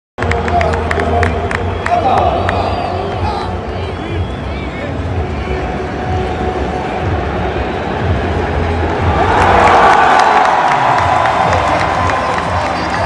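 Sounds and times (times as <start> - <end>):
stadium crowd cheering: 0.2 - 13.0.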